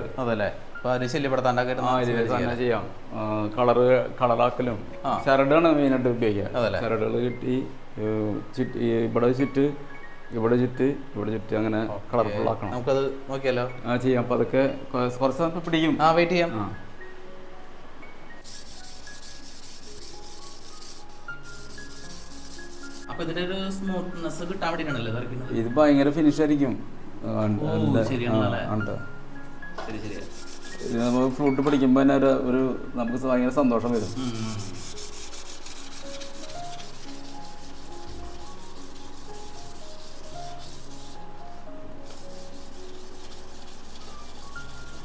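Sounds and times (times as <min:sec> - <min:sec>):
faint sparse music notes: 0:00.7 - 0:45.0
hand sanding bamboo: 0:18.4 - 0:23.1, 0:30.0 - 0:31.4, 0:33.9 - 0:41.3, 0:42.1 - 0:45.0.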